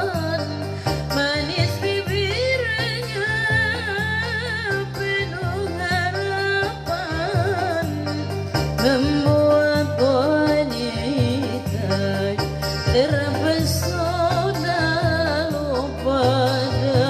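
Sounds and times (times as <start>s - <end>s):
instrumental backing with beat: 0.0s - 17.0s
woman singing into a microphone: 0.0s - 17.0s.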